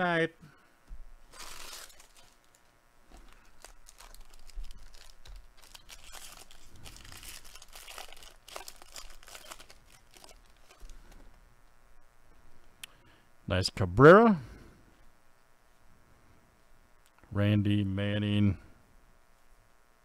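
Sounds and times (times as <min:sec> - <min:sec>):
wrapper tearing and crinkling: 0:01.3 - 0:10.9.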